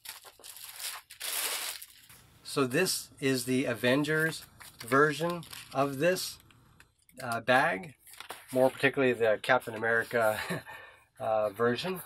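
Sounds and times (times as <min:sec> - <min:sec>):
plastic wrapping crinkling: 0:00.0 - 0:02.2, 0:04.2 - 0:06.4, 0:08.0 - 0:08.9.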